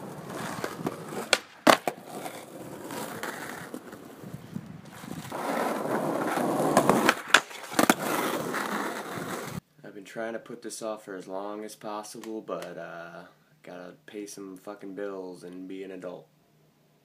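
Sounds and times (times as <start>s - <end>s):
skateboard clacks: 0.0s - 4.2s, 4.9s - 9.6s
skateboard wheels rolling on asphalt: 0.0s - 9.6s.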